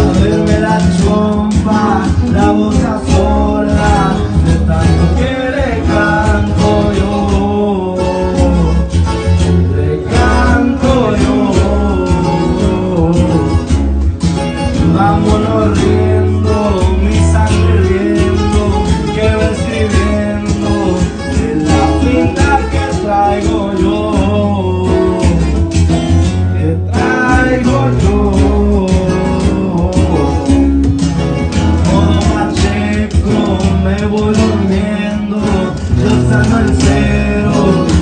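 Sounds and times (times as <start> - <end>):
man singing into microphone: 0.0 - 13.8, 14.8 - 25.7, 26.5 - 30.8, 31.8 - 38.0
strummed acoustic guitar: 0.0 - 38.0.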